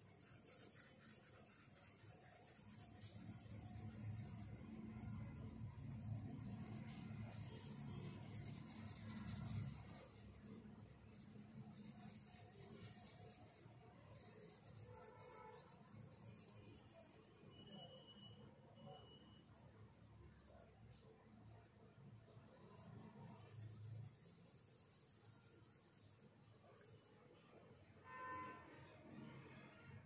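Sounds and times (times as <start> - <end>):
pencil scratching on paper: 0.0 - 21.3, 22.0 - 28.5.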